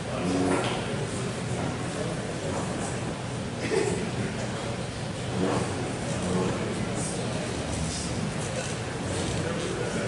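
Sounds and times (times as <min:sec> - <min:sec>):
crowd chatter in a hall: 0:00.0 - 0:10.0
low room rumble: 0:00.0 - 0:10.0.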